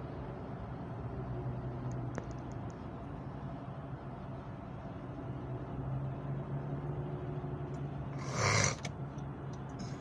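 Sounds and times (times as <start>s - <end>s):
car cabin road and engine hum: 0.0s - 10.0s.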